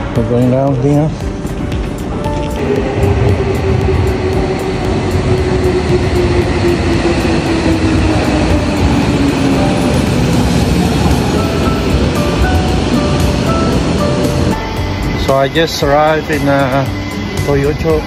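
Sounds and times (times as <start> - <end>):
background music: 0.0 - 18.0
subway train wheels rumbling: 0.0 - 18.0.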